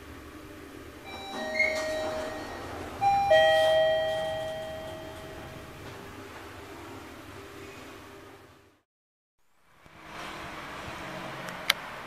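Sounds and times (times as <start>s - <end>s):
low hum with wavering tone: 0.0s - 6.3s
chime ringing: 1.1s - 5.7s.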